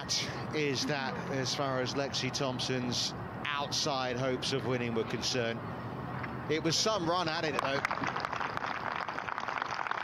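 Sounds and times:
crowd applauding: 7.4 - 10.0.

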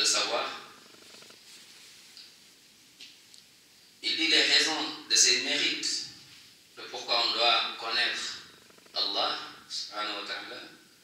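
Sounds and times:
faint creaky male hum: 0.5 - 1.5, 8.0 - 9.3.

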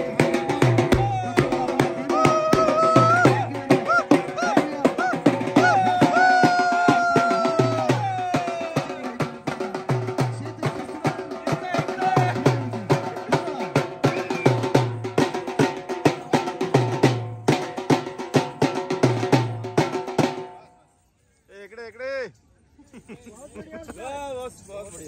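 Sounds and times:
fast dhol drumming: 0.0 - 20.6.

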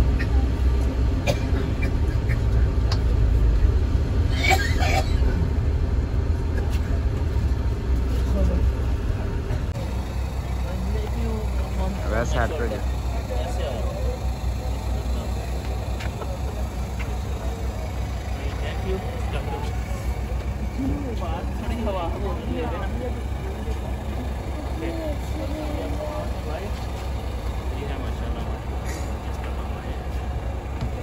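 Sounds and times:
bus engine rumble and road noise: 0.0 - 31.0.

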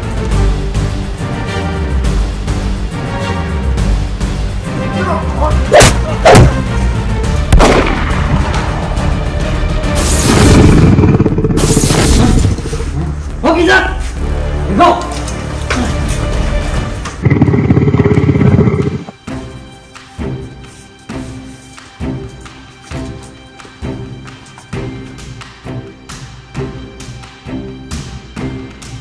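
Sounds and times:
action background music: 0.0 - 29.0
sharp shot-like cracks: 7.5 - 8.6
heavy booms: 7.5 - 8.8.

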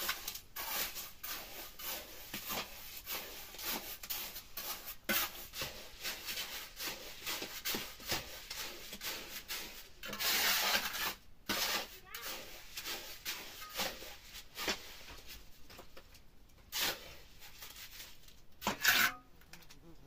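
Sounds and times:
trowel scraping mortar on metal: 0.0 - 15.4, 16.6 - 19.6.

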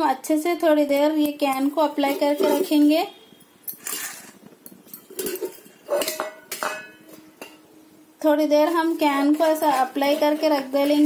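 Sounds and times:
steel utensils knocking and clinking: 0.9 - 2.9, 3.7 - 7.7, 8.6 - 11.0.

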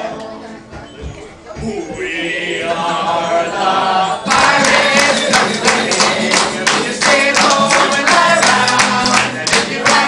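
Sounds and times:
crowd singing along: 1.9 - 10.0
audience clapping in time: 4.3 - 10.0.

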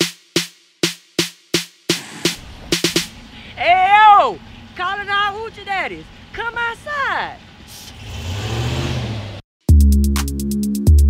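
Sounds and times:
pickup truck engine idling: 2.4 - 8.2
person hollering: 3.5 - 5.5.

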